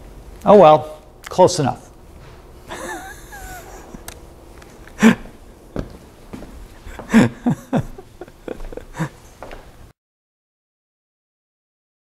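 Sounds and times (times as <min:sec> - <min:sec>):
man chuckling softly: 0:02.6 - 0:04.2, 0:04.8 - 0:05.5, 0:06.8 - 0:09.3.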